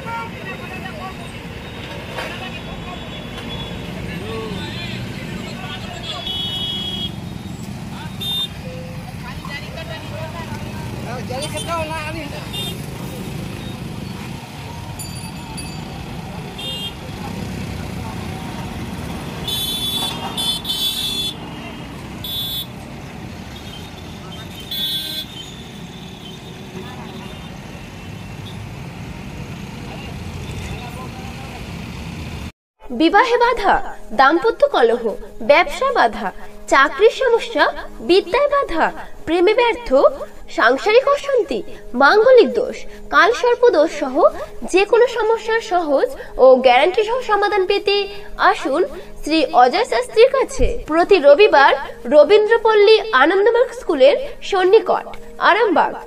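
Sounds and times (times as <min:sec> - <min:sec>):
vehicle horn toots: 0:05.8 - 0:07.4, 0:08.2 - 0:08.8, 0:16.6 - 0:17.1, 0:19.4 - 0:21.5, 0:22.2 - 0:22.8, 0:23.5 - 0:28.6.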